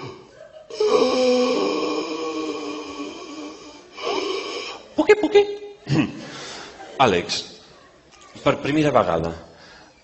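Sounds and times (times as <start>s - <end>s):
man moaning: 0.7s - 4.8s.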